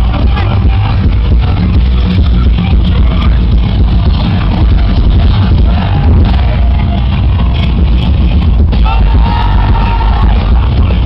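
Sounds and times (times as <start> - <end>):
thrash metal band playing live: 0.0 - 11.0.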